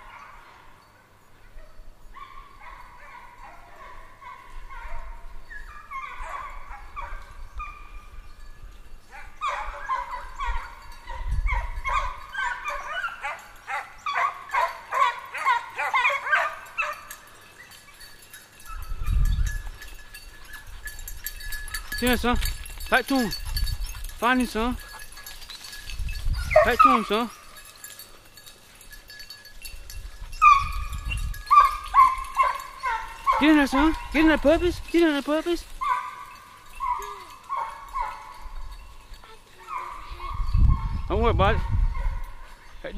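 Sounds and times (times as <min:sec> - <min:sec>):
hounds baying: 0:00.0 - 0:08.4, 0:09.0 - 0:42.9.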